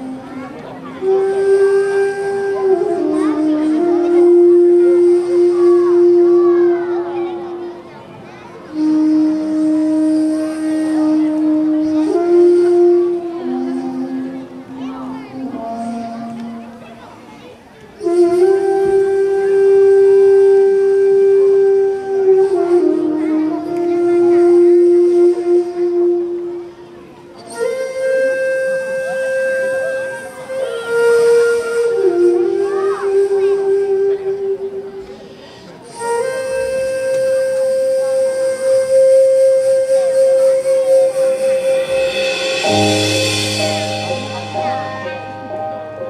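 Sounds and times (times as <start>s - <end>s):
wind instrument holding long note: 0.0s - 46.0s.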